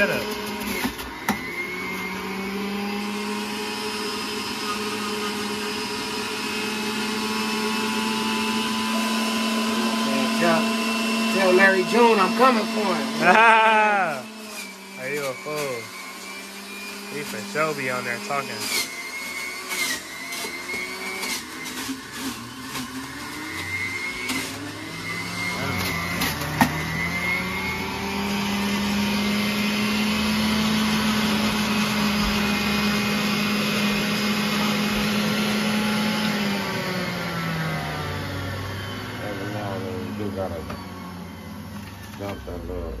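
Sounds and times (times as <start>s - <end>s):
juicer motor running: 0.0s - 43.0s
produce knocking in juicer: 25.7s - 27.0s.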